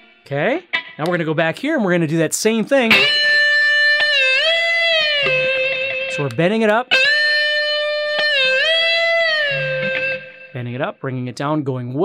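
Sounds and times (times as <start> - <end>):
electric guitar note bent: 2.9 - 10.6.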